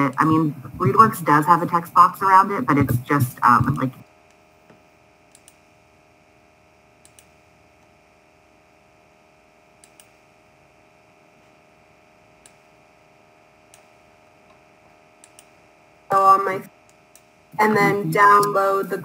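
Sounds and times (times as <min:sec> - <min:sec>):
low electrical hum: 0:00.0 - 0:19.0
computer mouse clicks: 0:05.3 - 0:05.6, 0:07.0 - 0:07.4, 0:09.8 - 0:10.2, 0:13.7 - 0:13.9, 0:15.2 - 0:15.6.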